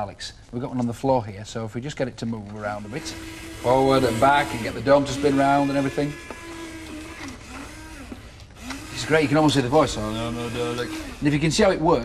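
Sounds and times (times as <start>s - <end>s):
small electric motors whirring: 2.6s - 11.7s.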